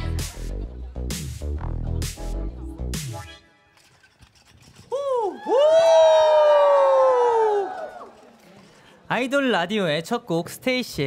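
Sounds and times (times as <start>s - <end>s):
women cheering: 4.9s - 8.4s.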